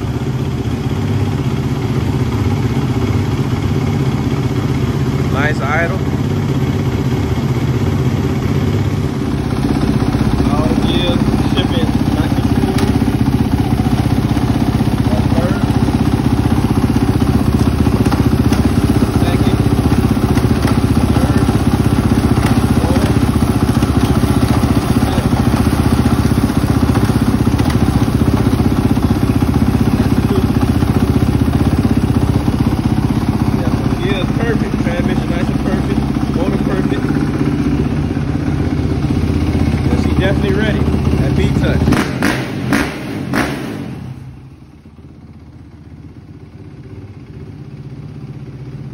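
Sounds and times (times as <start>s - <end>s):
motorcycle engine idling: 0.0s - 48.9s.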